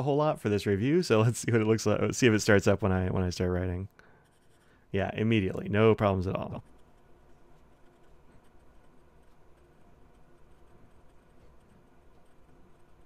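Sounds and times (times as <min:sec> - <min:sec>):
fountain pen writing on paper: 0:06.6 - 0:13.0.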